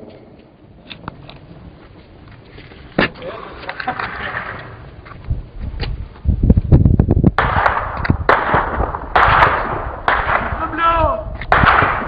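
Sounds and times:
gunshots with echo: 0:07.4 - 0:10.7, 0:11.5 - 0:12.0.

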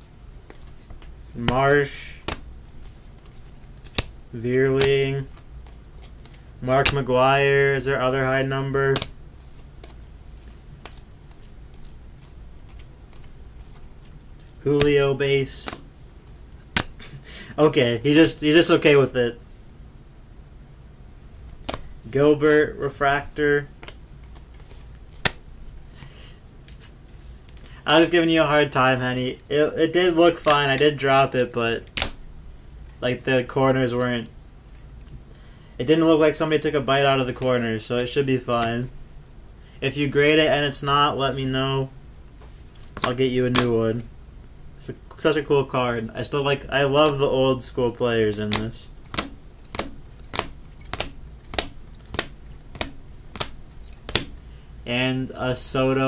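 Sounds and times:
low steady hum: 0:00.0 - 0:56.0
plastic card holders clicking: 0:48.5 - 0:54.4.

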